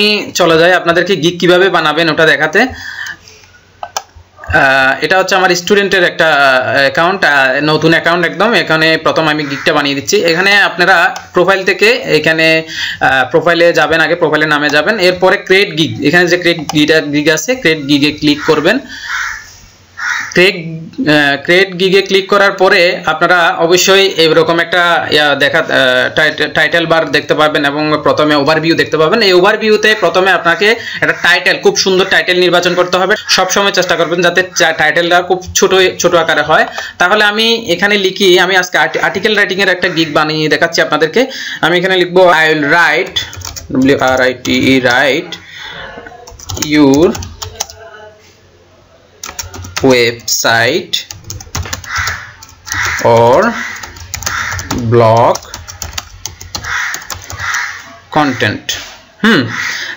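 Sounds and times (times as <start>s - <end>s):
man speaking: 0.0s - 3.2s, 3.8s - 19.0s, 20.3s - 48.2s, 49.2s - 51.7s, 52.8s - 55.9s, 57.9s - 59.7s
breathy sounds: 2.7s - 3.7s, 12.7s - 13.1s, 36.7s - 37.0s
computer keyboard keystrokes: 43.0s - 45.0s, 46.3s - 47.8s, 49.2s - 50.3s, 51.1s - 57.6s.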